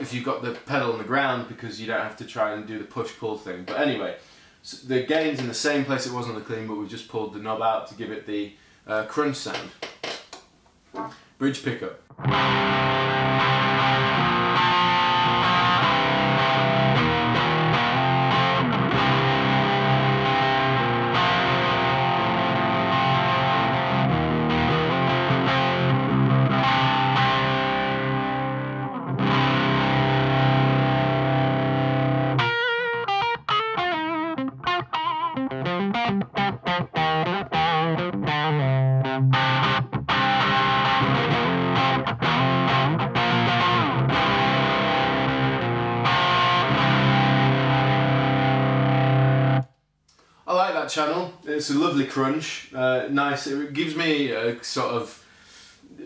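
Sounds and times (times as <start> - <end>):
distorted electric guitar: 10.9 - 11.2, 12.1 - 49.7.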